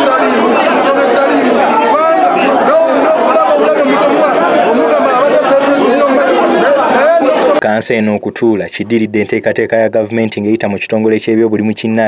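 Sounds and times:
loud crowd chatter: 0.0 - 12.0.

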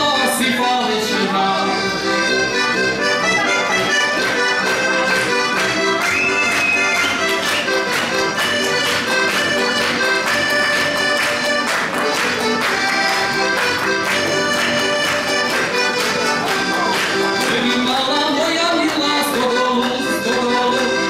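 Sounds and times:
button accordion folk tune: 0.0 - 21.0.

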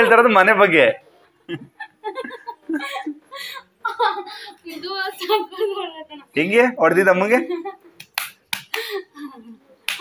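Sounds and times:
man snapping fingers: 8.0 - 8.8.

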